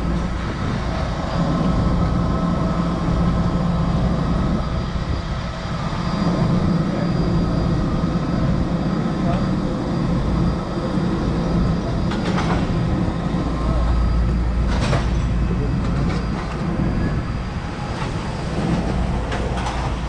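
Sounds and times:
aircraft engines rumbling: 0.0s - 20.0s
high-pitched engine whine: 0.0s - 20.0s.

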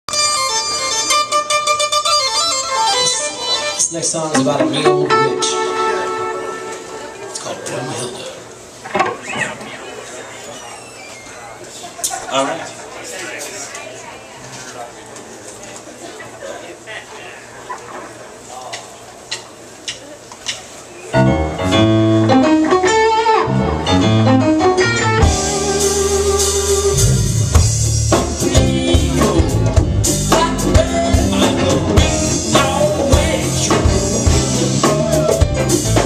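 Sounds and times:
low crowd chatter: 0.1s - 36.0s.

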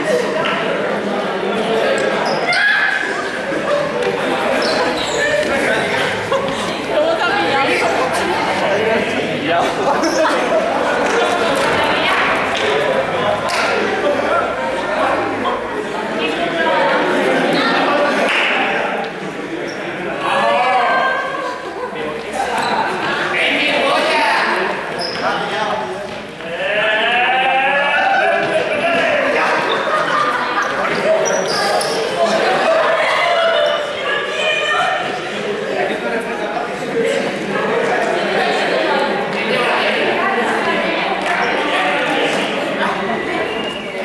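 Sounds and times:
students talking and calling out: 0.0s - 44.0s
sneakers squeaking on gym floor: 2.0s - 3.0s, 4.1s - 8.3s, 22.4s - 23.2s, 24.8s - 26.3s, 30.6s - 32.2s
running footsteps on hall floor: 3.1s - 15.3s.

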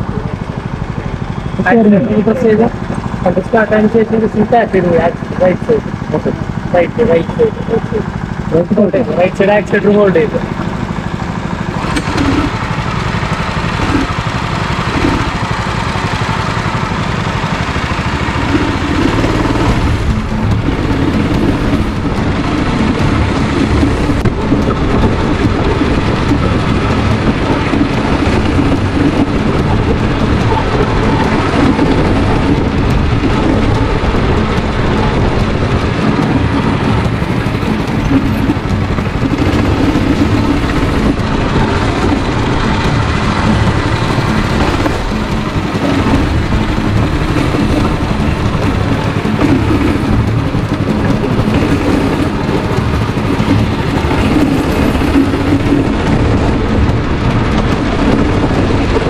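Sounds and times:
go-kart engine running: 0.0s - 59.0s.

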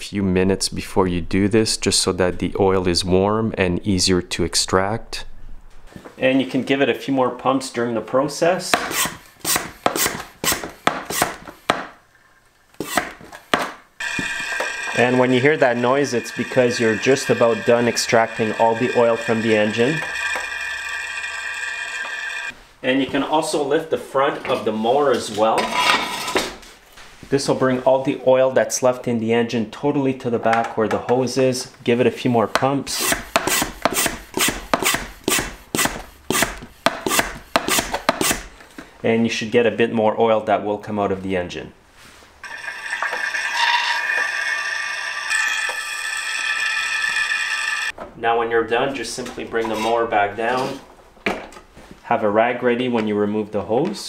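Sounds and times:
hand pump strokes: 14.0s - 22.5s, 32.5s - 38.5s, 42.4s - 47.9s
hose sucking air: 32.9s - 38.5s.

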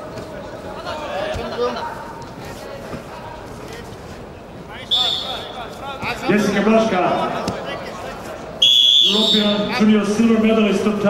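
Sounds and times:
men's voices: 4.6s - 11.0s
referee whistle blast: 4.9s - 5.6s, 8.6s - 9.7s.

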